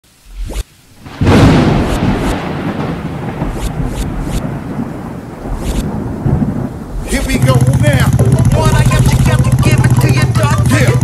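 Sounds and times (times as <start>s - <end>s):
short crackles: 0.1s - 9.4s
deep thunder-like rumble: 1.0s - 9.6s.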